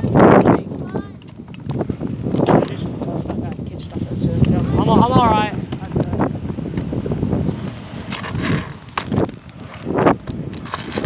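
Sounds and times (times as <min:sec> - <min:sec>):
scooter wheels rolling on asphalt: 0:00.0 - 0:11.0.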